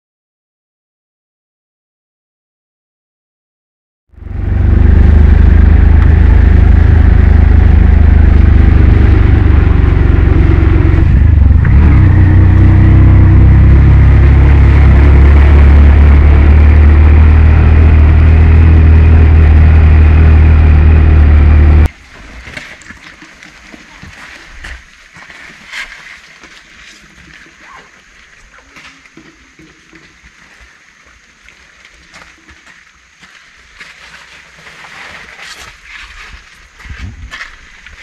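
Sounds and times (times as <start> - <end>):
quiet outdoor sound: 4.1 - 38.0
auto-rickshaw engine running: 4.2 - 21.9.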